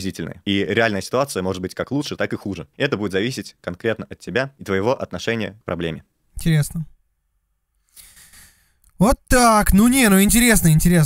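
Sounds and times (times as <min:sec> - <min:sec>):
man sighing: 0:07.9 - 0:08.8.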